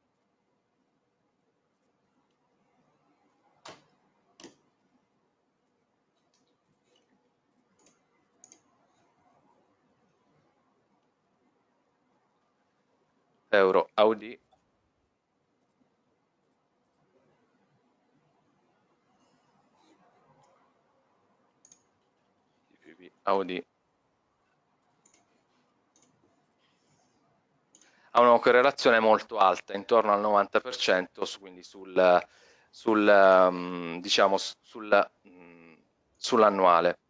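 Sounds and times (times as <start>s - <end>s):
computer mouse clicks: 3.6s - 4.7s, 6.1s - 9.3s, 19.1s - 20.7s, 21.5s - 22.3s, 24.4s - 27.1s, 27.7s - 28.1s.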